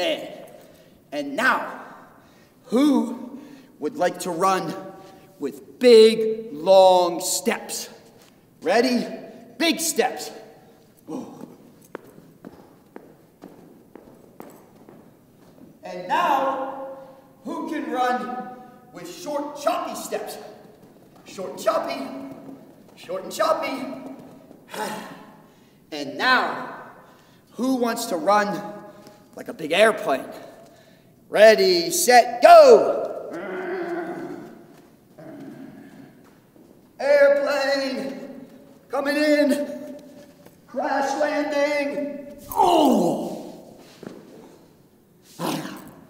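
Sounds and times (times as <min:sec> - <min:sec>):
running footsteps on carpet: 0:11.4 - 0:15.8.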